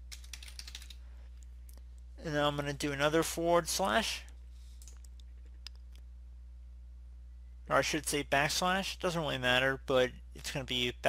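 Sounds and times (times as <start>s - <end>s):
computer keyboard typing: 0.1s - 1.0s.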